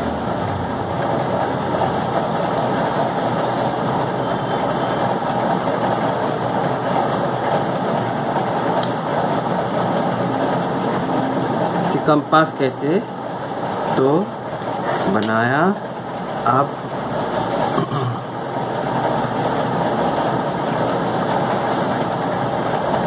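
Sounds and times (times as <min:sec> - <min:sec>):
steady motor running: 0:00.0 - 0:23.0.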